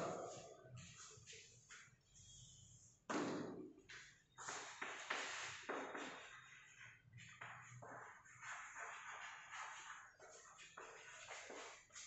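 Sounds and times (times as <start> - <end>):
chalk scratching on blackboard: 4.4 - 12.0.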